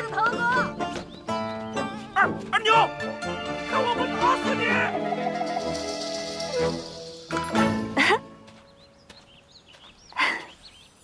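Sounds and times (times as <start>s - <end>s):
drama music with held notes: 0.0s - 8.9s.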